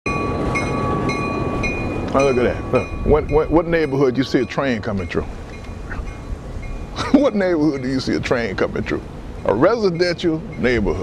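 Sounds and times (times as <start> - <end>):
freight train rumble: 0.1 - 11.0.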